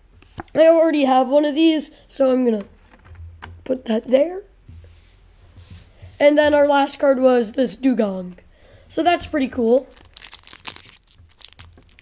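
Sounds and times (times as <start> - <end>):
foil wrapper crinkling and tearing: 9.7 - 12.0.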